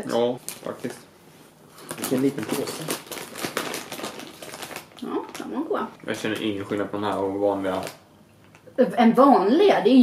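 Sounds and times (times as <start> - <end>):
plastic snack bag crinkling: 0.4 - 1.0, 1.8 - 8.6.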